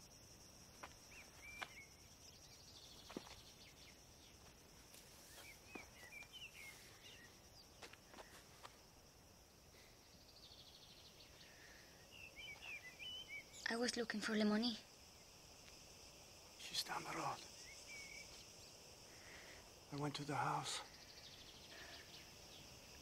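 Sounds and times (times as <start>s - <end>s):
high insect drone: 0.0s - 23.0s
bird chirps: 1.1s - 4.4s, 5.3s - 8.4s, 10.2s - 14.0s, 16.9s - 18.8s.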